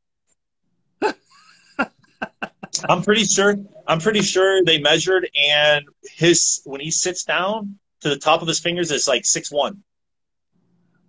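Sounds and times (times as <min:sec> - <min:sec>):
man laughing: 0:01.0 - 0:04.6.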